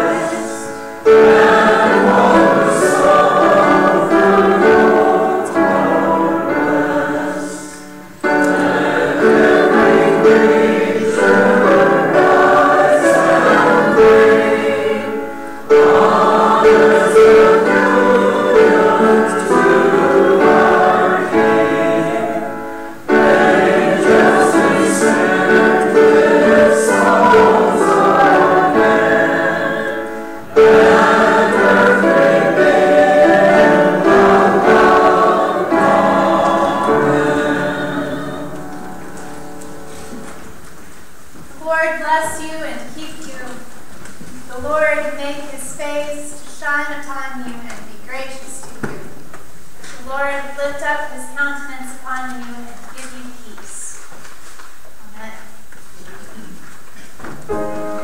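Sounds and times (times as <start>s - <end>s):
choir and congregation singing hymn: 0.0s - 40.7s.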